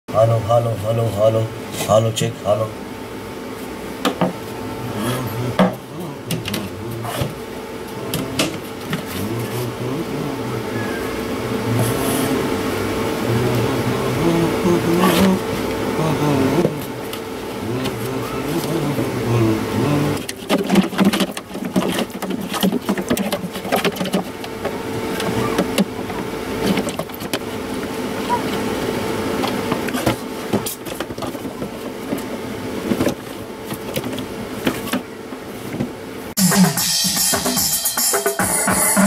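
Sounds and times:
steady hum: 0.1 - 39.0
low notes from small speaker: 4.8 - 17.0, 17.6 - 20.4
knocks and scrapes on plastic can: 20.2 - 25.9.

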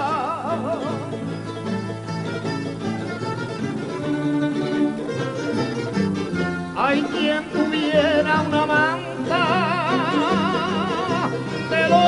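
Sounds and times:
plucked string band: 0.0 - 12.0.

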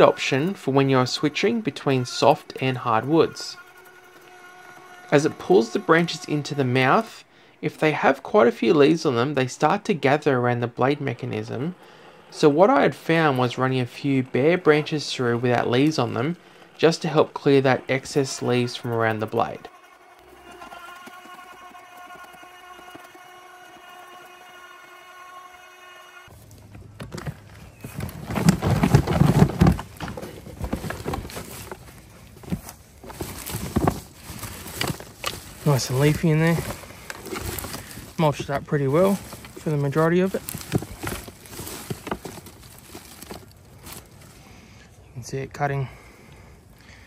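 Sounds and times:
rustling of shredded leaves: 0.0 - 7.2, 27.4 - 44.6
shredder motor whine: 0.0 - 44.7
plastic bin knocking and thumping: 27.0 - 31.7.

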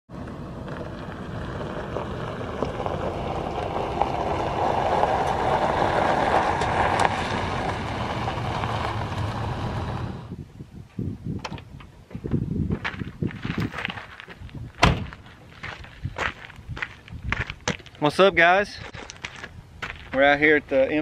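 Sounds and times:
van engine running: 0.1 - 10.3
tyres crunching on gravel: 0.2 - 10.3, 12.2 - 21.0.

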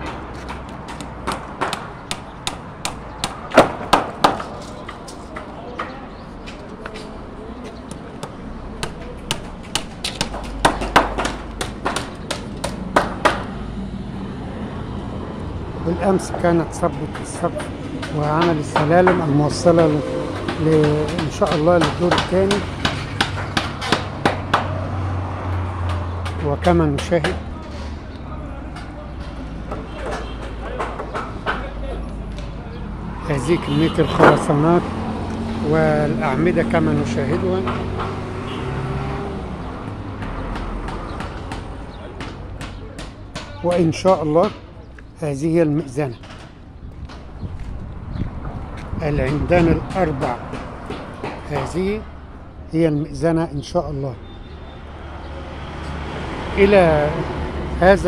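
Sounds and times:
hammer knocking on wood: 0.0 - 4.6, 8.2 - 13.5, 17.1 - 24.8, 29.6 - 31.8, 40.2 - 44.7, 48.8 - 51.8.

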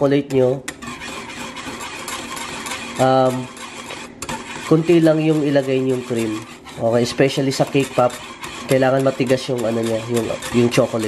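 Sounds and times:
whisk scraping metal saucepan: 0.0 - 11.0.

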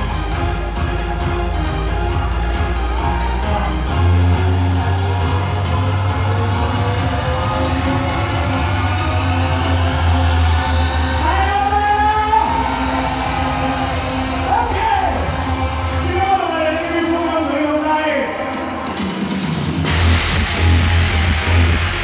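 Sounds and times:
amplified live pop music: 0.0 - 22.0.

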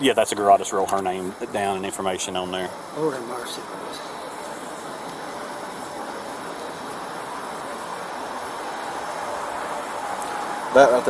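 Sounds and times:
passing highway traffic: 0.0 - 11.0.

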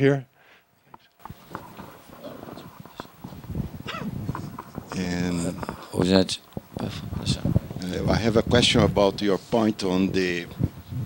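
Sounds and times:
microphone handling knocks: 1.2 - 7.8
faint voices: 1.2 - 9.1.

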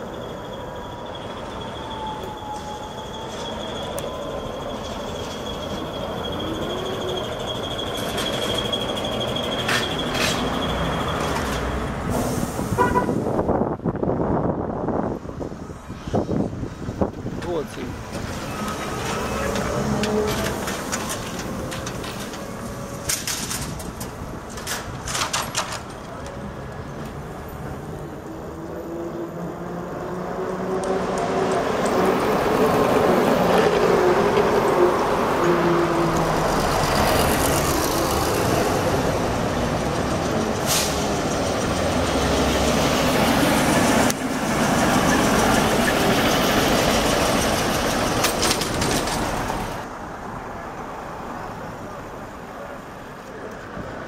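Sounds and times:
street traffic: 0.0 - 54.0
trolleybus passing: 0.0 - 54.0.

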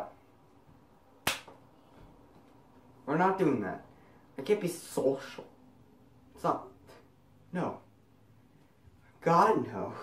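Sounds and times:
sharp hand snap with echo: 1.2 - 1.6.

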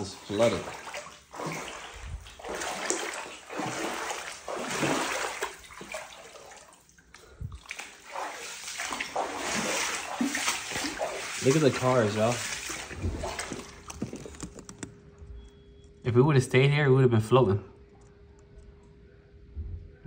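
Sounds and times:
footsteps wading through water: 0.0 - 14.9
water sloshing and splashing: 0.0 - 15.0.

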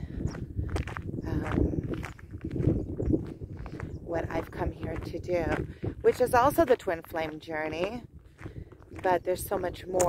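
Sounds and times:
footsteps on gravel: 0.0 - 10.0
wind rumbling on microphone: 0.0 - 10.0.

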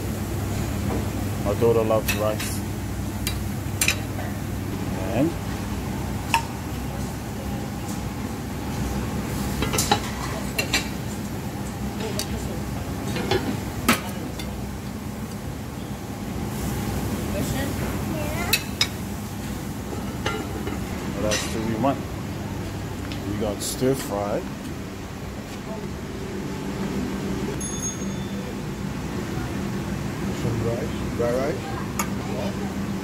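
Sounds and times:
steady low hum: 0.0 - 33.0
background chatter: 28.5 - 33.0.

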